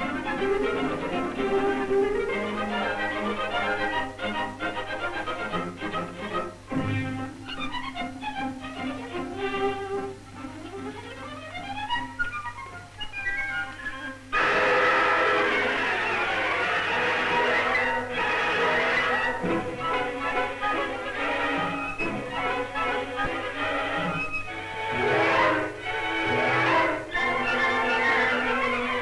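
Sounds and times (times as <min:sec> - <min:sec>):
orchestral strings film score: 0:00.0 - 0:29.0.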